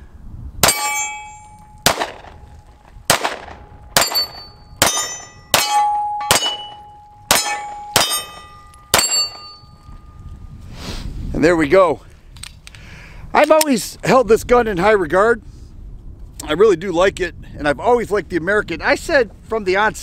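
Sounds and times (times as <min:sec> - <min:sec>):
steel plate clanging: 0:00.6 - 0:01.8, 0:03.9 - 0:09.8
pistol shots: 0:01.8 - 0:02.4, 0:03.1 - 0:09.4.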